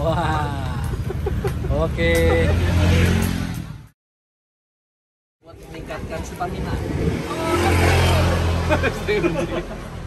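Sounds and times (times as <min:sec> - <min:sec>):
vehicle engine passing: 0:06.6 - 0:10.0.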